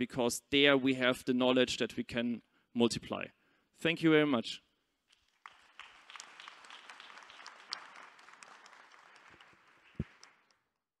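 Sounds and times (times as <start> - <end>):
audience applauding: 5.2 - 10.6.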